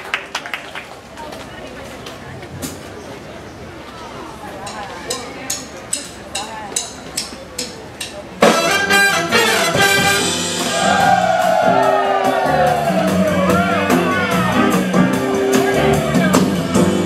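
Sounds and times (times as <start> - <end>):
big jazz band playing: 8.2 - 17.0.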